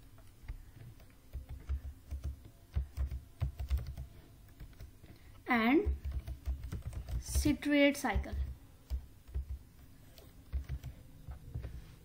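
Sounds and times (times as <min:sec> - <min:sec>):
typing on computer keyboard: 0:00.1 - 0:11.7.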